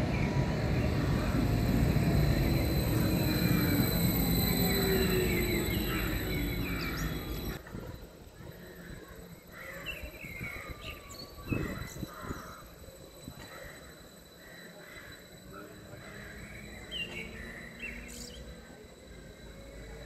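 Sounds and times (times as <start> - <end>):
birds calling: 0.0 - 7.6
electric train passing: 0.0 - 20.0.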